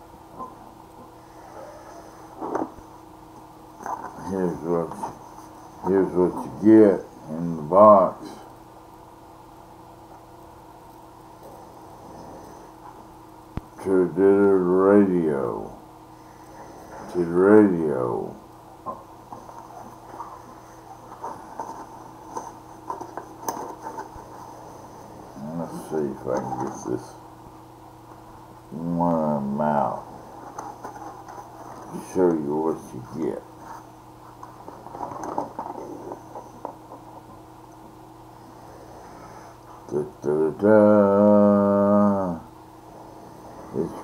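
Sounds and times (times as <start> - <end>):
man humming hesitation sound: 39.9 - 42.6.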